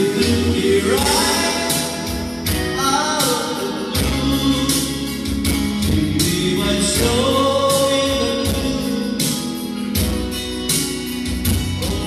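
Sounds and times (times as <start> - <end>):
man singing into a microphone: 0.0 - 9.7, 11.5 - 12.0
backing track over loudspeaker: 0.0 - 12.0.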